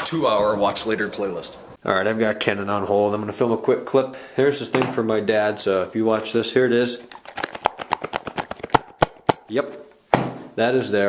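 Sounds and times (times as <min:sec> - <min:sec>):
gift box contents rattling: 0:07.1 - 0:08.8.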